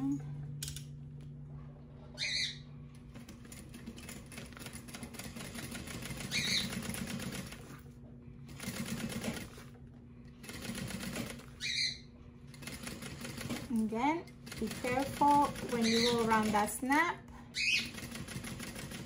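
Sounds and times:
sewing machine stitching: 3.2s - 7.8s, 8.5s - 9.7s, 10.4s - 11.5s, 12.5s - 17.0s, 17.8s - 19.0s.

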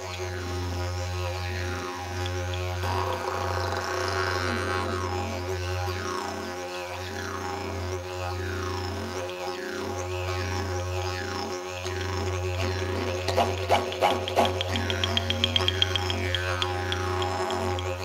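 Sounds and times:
low drone with sweeping overtones: 1.2s - 5.0s, 11.9s - 18.0s.

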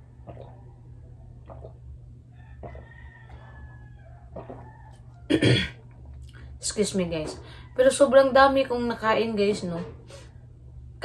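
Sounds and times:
person swallowing water: 0.0s - 2.9s, 4.3s - 6.5s
sharp cough: 5.3s - 5.8s.

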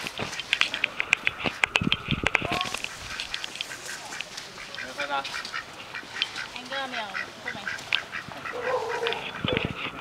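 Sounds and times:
ducks quacking: 0.2s - 10.0s.

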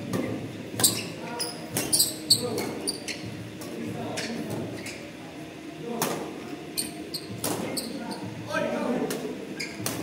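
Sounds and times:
shoes squeaking on court: 0.2s - 3.3s, 4.1s - 5.1s, 9.6s - 10.0s.

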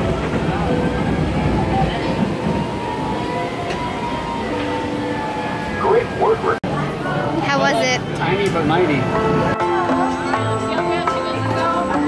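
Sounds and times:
roller coaster rumbling on track: 0.0s - 9.6s
voices: 0.2s - 12.0s.

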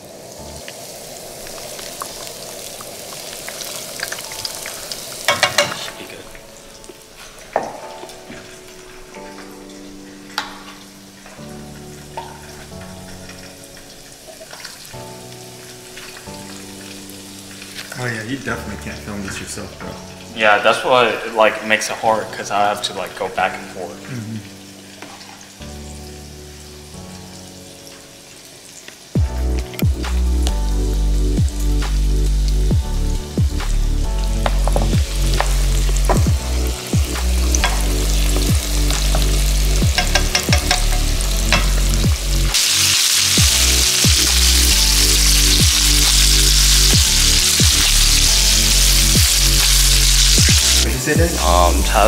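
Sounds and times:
chicken sizzling in hot oil: 0.0s - 51.8s
music with heavy bass beat: 29.2s - 42.6s, 43.3s - 51.4s.

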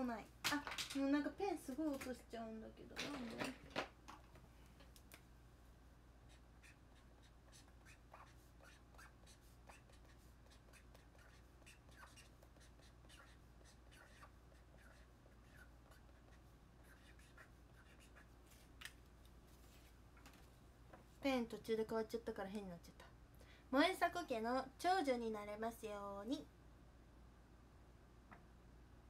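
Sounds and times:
marker writing on paper: 6.3s - 18.4s.

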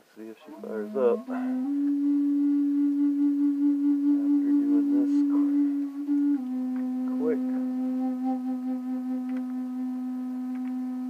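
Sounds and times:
steady hum-like tone: 0.0s - 11.0s.

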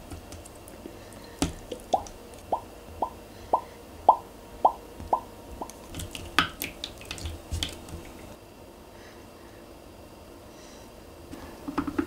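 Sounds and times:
slime squelching plops: 1.2s - 8.3s.

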